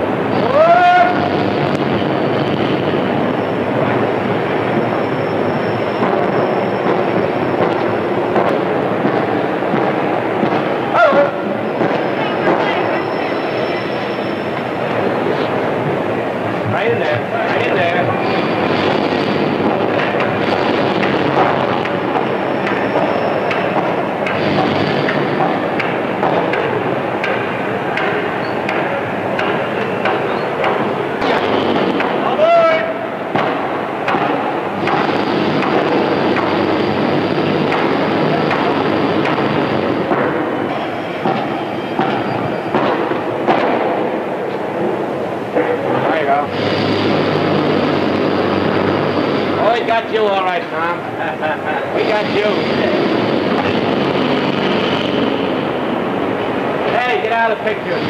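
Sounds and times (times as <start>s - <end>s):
indistinct crowd voices: 0.0s - 58.0s.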